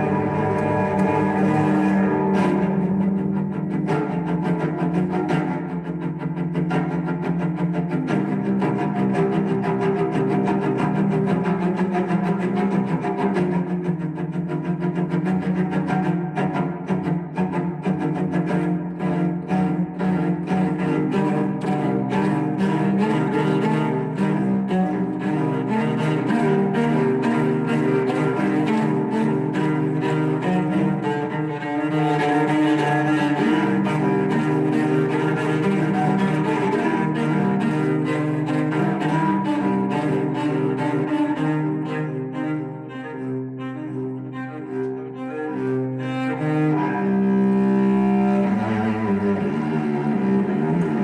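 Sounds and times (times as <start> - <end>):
solo cello playing: 0.0 - 51.0.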